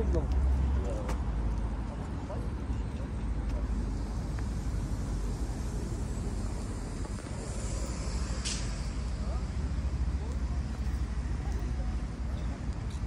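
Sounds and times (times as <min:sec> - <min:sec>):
low rumble of traffic: 0:00.0 - 0:13.0
brief sharp hiss: 0:07.3 - 0:09.1.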